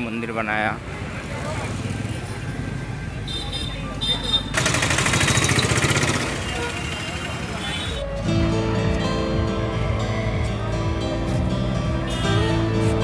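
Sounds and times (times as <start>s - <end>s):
traffic: 0.0s - 13.0s
rattling vehicle: 4.5s - 7.8s.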